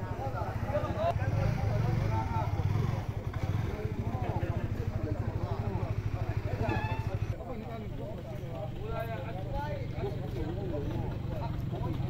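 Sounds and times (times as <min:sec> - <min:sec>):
chatter of many voices: 0:00.0 - 0:12.0
motorcycle engine idling: 0:00.0 - 0:12.0.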